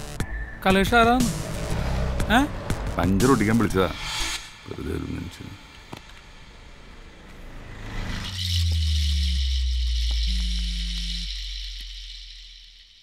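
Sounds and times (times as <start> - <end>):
deep low drone: 0.3 - 13.0
buzzing hum: 6.5 - 13.0.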